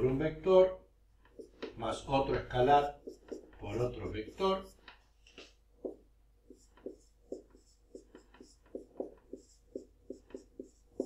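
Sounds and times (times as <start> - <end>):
marker writing on a whiteboard: 1.2 - 11.0.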